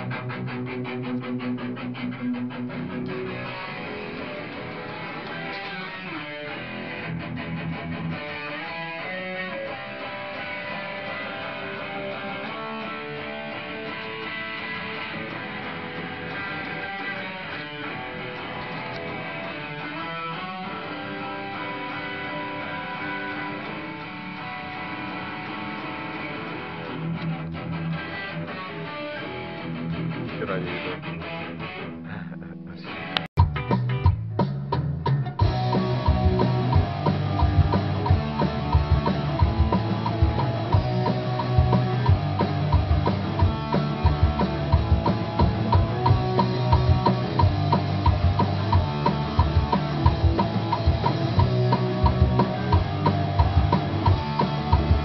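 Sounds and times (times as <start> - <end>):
distorted electric guitar: 0.0 - 55.0.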